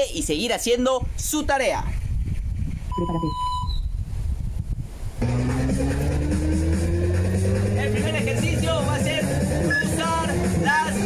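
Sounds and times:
wind buffeting microphone: 0:00.0 - 0:08.1
short whistle-like tone: 0:02.9 - 0:03.9.

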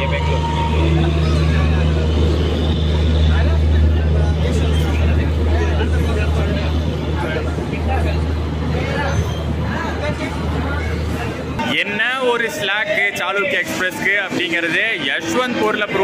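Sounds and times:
crowd chatter: 0:00.0 - 0:16.0
train rumbling: 0:00.0 - 0:16.0.

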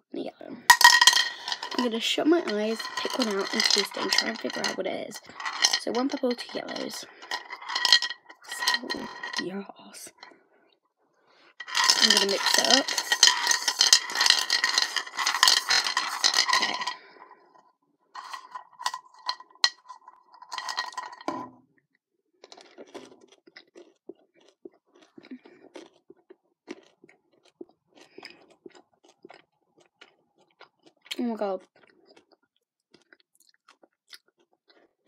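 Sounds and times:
candy eggs rattling in a bowl: 0:00.6 - 0:10.3, 0:11.6 - 0:17.5, 0:18.2 - 0:21.5
crunching while chewing: 0:22.4 - 0:35.0.

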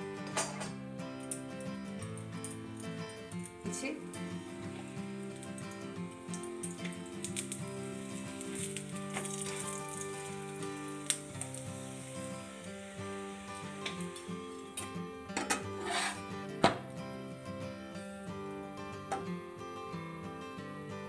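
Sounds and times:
oil sizzling on a griddle: 0:00.0 - 0:16.5
music of long held notes: 0:00.0 - 0:21.0.

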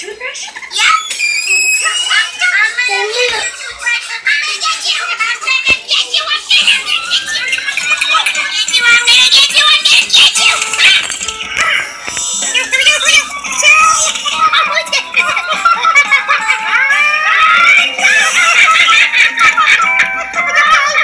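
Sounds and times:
children's tv music: 0:00.0 - 0:21.0.

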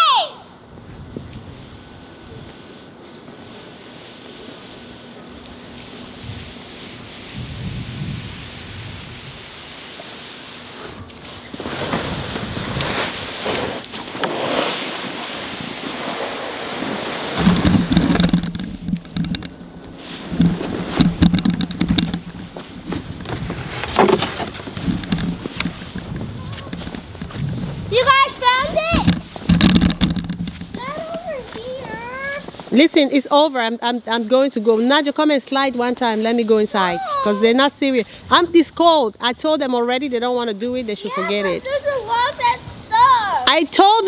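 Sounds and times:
child's voice: 0:00.0 - 0:00.6, 0:27.9 - 0:29.1, 0:30.8 - 0:32.5, 0:36.9 - 0:37.5, 0:41.0 - 0:43.5
wind buffeting microphone: 0:00.6 - 0:02.6, 0:05.6 - 0:09.8, 0:16.9 - 0:32.8, 0:38.1 - 0:43.8
plastic sled scraping on snow: 0:05.7 - 0:37.6, 0:40.7 - 0:44.0.

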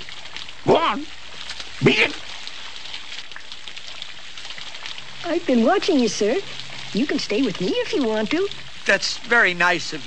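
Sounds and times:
raindrop ticks: 0:00.0 - 0:10.0
steady rain falling: 0:00.0 - 0:10.0.

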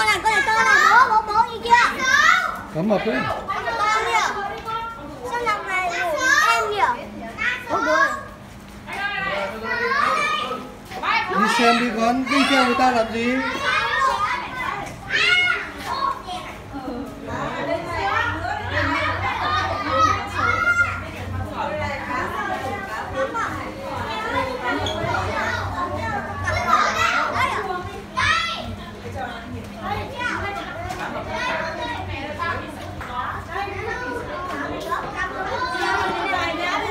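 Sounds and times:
child shouting: 0:00.0 - 0:02.6
children talking excitedly: 0:00.0 - 0:36.9.

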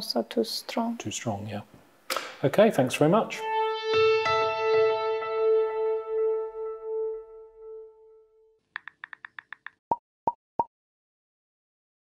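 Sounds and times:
sharp pops: 0:02.1 - 0:02.4.

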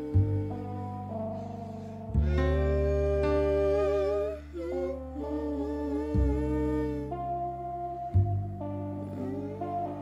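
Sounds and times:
deep sustained bass notes: 0:00.0 - 0:10.0
person humming wordless melody: 0:00.0 - 0:10.0.

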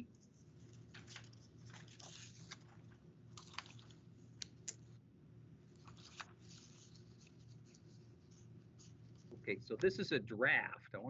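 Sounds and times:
paper rustling: 0:00.2 - 0:05.0, 0:05.7 - 0:09.4.

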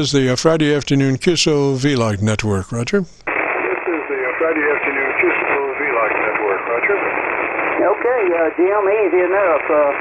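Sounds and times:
radio band hiss: 0:02.4 - 0:10.0.

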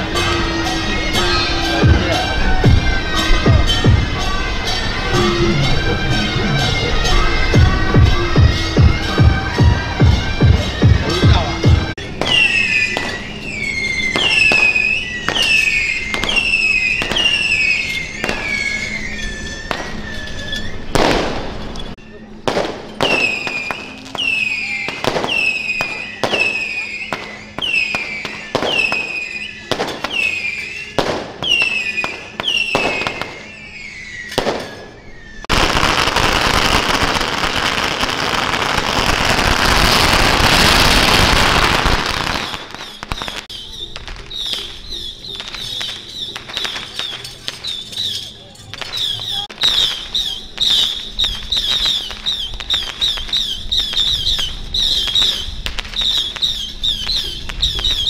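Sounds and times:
dense firecracker crackle: 0:11.3 - 0:58.0
firecrackers popping: 0:12.0 - 0:58.0
high swooping whistle: 0:12.2 - 0:22.3, 0:23.0 - 0:58.0.

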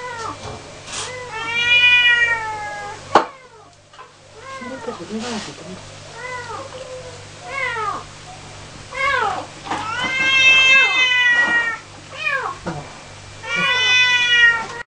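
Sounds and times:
cat meowing: 0:01.0 - 0:03.8, 0:04.4 - 0:05.1, 0:06.1 - 0:08.1, 0:08.9 - 0:12.7, 0:13.4 - 0:14.8.

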